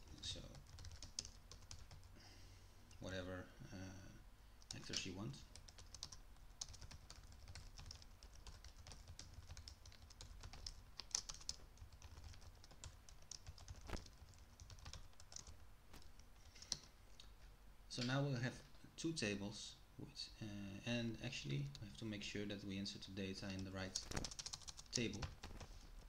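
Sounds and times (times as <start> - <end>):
computer keyboard typing: 0.0 - 2.1, 4.6 - 16.9, 23.5 - 26.0.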